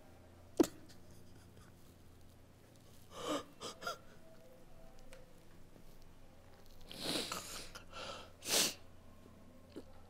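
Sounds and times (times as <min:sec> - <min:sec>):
man sobbing: 0:03.1 - 0:04.4
catches of breath: 0:06.9 - 0:08.8.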